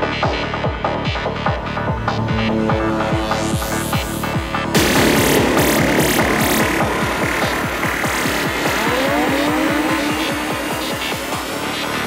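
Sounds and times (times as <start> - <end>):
psytrance music: 0.0 - 12.0
pulsing bassline: 0.0 - 12.0
upward synth sweep: 1.6 - 12.0.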